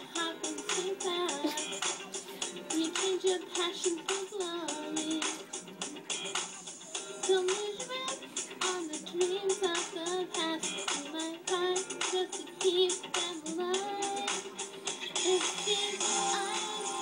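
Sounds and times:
backing music from speaker: 0.0 - 17.0.

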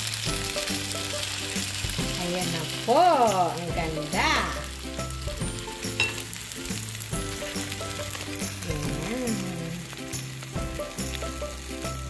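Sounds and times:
background music: 0.0 - 12.0
omelette sizzling in oil: 0.0 - 12.0.

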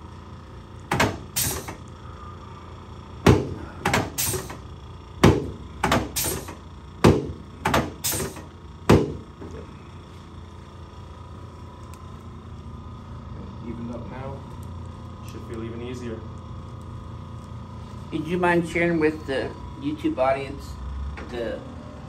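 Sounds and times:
padded table thumping: 7.0 - 7.9, 8.9 - 9.2.

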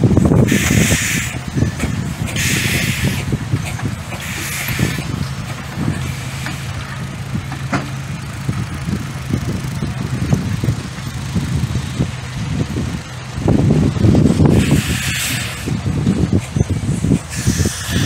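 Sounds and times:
railway cars rumbling past: 0.0 - 18.0
rush of noise: 8.3 - 18.0.

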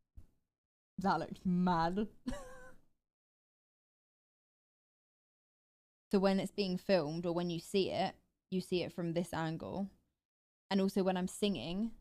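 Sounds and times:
woman speaking: 1.0 - 2.3, 6.1 - 9.9, 10.7 - 12.0
woman laughing: 2.2 - 2.8.

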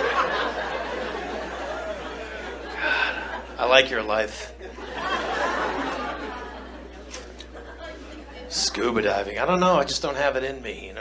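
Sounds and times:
audience laughing: 0.0 - 8.6.

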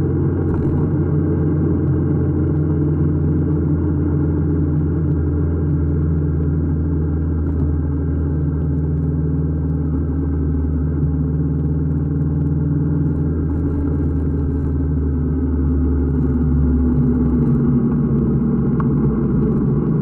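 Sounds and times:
motorcycle engine cruising: 0.0 - 20.0.

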